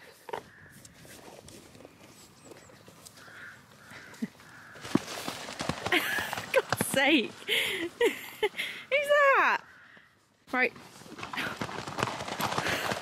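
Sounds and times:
footfalls on grass: 0:04.5 - 0:07.2.

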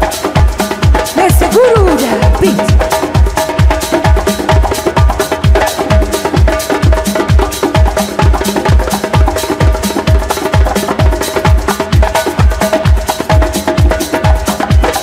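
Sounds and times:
house music: 0:01.2 - 0:02.9.

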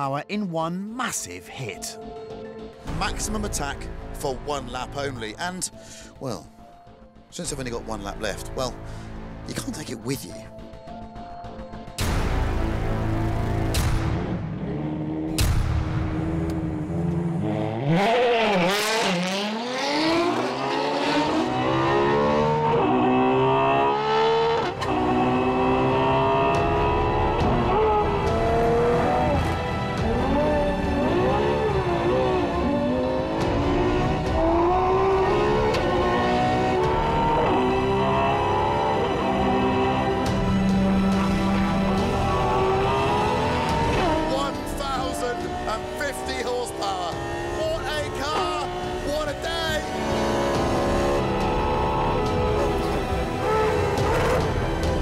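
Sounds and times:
car engine at full throttle: 0:12.0 - 0:55.0.

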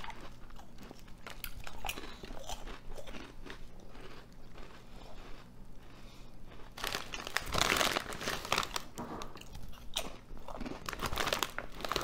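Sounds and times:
potato chips crunching: 0:00.0 - 0:12.0.

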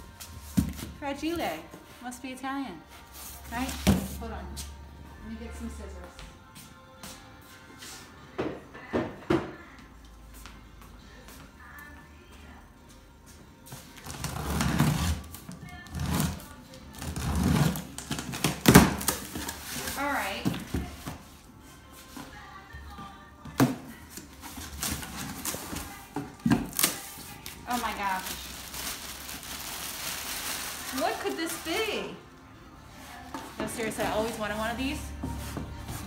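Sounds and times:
soft background music: 0:00.0 - 0:36.0.

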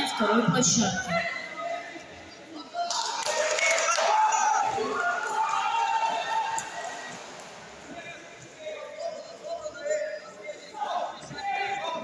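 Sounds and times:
voices calling out and talking: 0:00.0 - 0:12.0.

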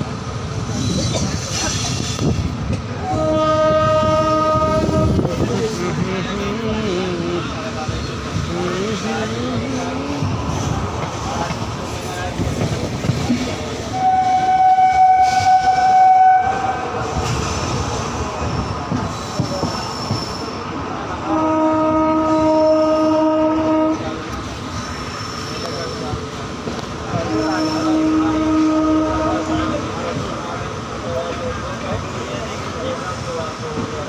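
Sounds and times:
train wheels clattering on rails: 0:00.0 - 0:06.0, 0:07.5 - 0:15.9, 0:17.0 - 0:21.0
train horn blasts: 0:03.0 - 0:05.4, 0:13.9 - 0:17.0, 0:21.2 - 0:24.2, 0:27.3 - 0:29.8.

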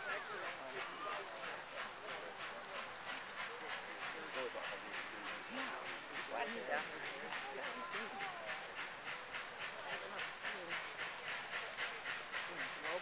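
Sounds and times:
onlookers chattering: 0:00.0 - 0:13.0
steam locomotive chuffing: 0:00.0 - 0:13.0.

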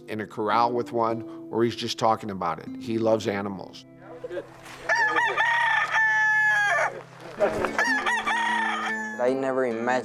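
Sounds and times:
rooster crowing: 0:04.9 - 0:09.3.

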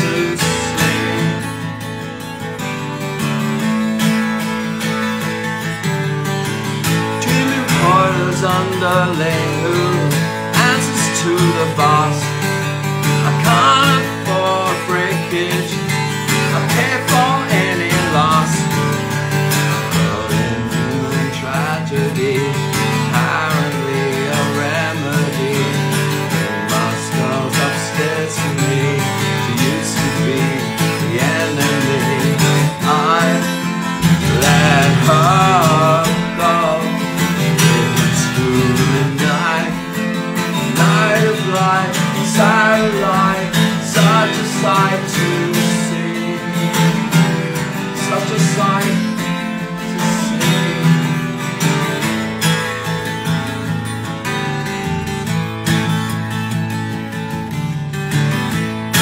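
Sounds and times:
twelve-string acoustic guitar playing: 0:00.0 - 0:59.0.

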